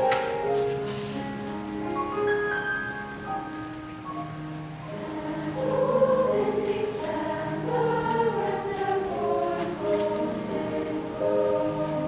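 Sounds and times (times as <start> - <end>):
girls' choir singing: 4.8 - 12.0.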